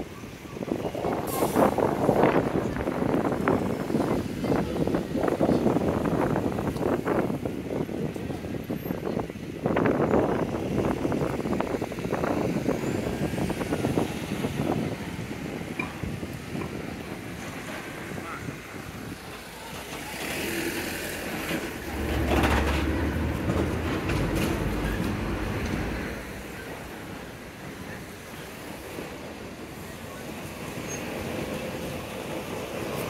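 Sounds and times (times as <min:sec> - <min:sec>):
passersby talking: 0:00.0 - 0:33.0.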